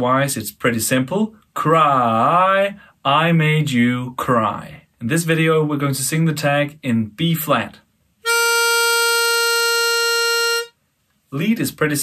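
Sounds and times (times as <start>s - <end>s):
pitch pipe note: 8.2s - 10.8s.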